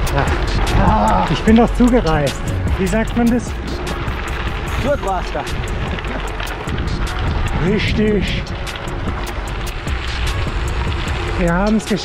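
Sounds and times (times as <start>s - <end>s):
background music with beat: 0.0s - 12.0s
tyres rumbling on gravel: 0.0s - 12.0s
wind rush: 0.0s - 12.0s.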